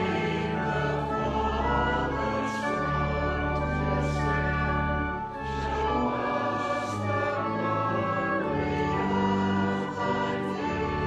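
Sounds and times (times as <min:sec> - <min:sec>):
choir singing: 0:00.0 - 0:11.0
low held accompaniment: 0:00.0 - 0:11.0.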